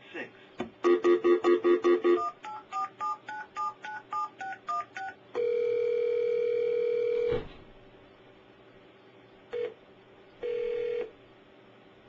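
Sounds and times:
touch-tone dialing beeps: 0.8s - 6.1s
telephone ringback tone: 0.8s - 7.3s, 10.4s - 11.1s.

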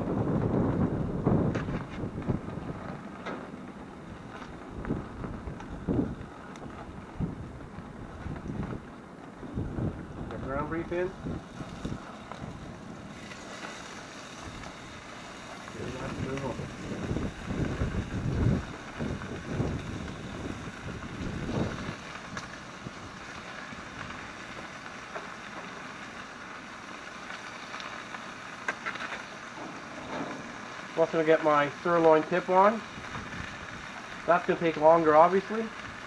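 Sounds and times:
wind buffeting microphone: 0.0s - 24.4s, 32.9s - 34.0s
steady hiss: 0.2s - 36.0s.

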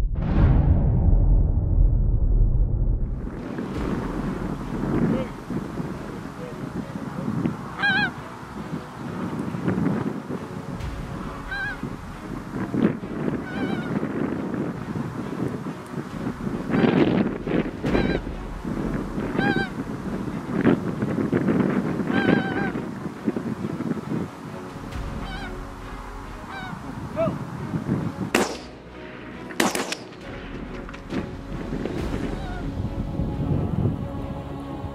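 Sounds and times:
low background rumble: 0.0s - 9.0s, 10.7s - 34.9s
geese calling: 3.5s - 32.9s.

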